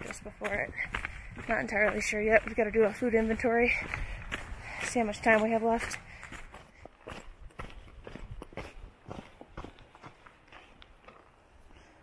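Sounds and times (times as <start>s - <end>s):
footsteps on gravel trail: 0.0s - 12.0s.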